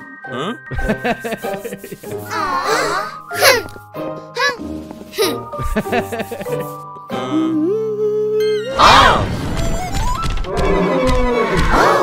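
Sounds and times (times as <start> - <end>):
cartoon music: 1.4 - 10.5.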